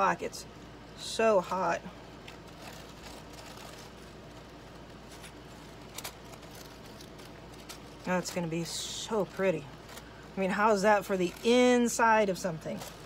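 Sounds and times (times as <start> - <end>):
air conditioner hum: 0.0 - 13.0.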